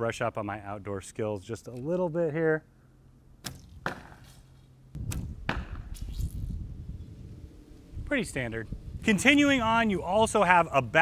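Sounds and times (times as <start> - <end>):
arrow striking target: 3.4 - 6.6
bowstring snap: 5.0 - 6.6.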